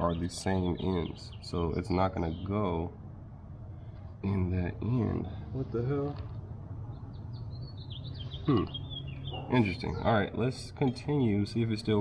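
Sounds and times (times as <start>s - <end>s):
bird chirping: 0.0s - 3.0s, 3.9s - 12.0s
steady low hum: 0.0s - 12.0s.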